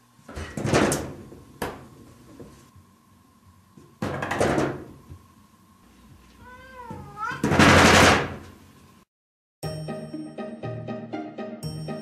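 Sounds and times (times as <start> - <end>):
cat meowing: 6.4 - 7.5
music: 9.6 - 12.0.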